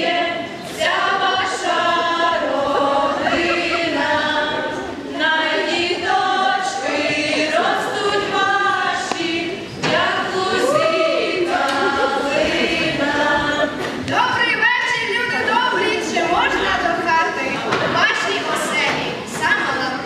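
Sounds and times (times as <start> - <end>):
group singing a cappella carol: 0.0 - 14.1.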